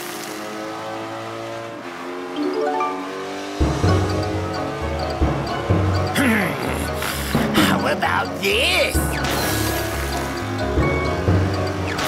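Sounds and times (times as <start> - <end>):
cartoon background music: 2.4 - 12.0.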